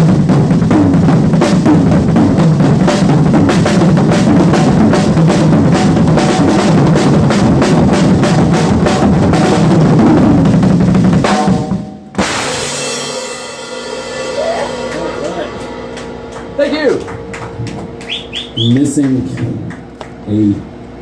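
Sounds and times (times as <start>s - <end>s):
drum kit solo: 0.0s - 19.0s.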